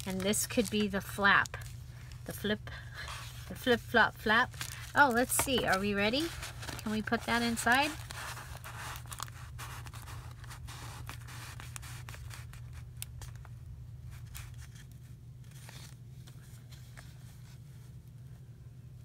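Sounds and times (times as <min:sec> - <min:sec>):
paper and card rustling: 0:00.0 - 0:17.7.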